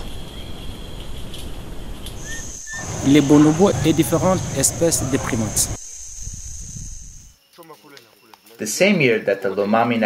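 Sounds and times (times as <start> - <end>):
high insect-like whine: 0.0 - 10.0
steady background hiss: 0.0 - 10.0.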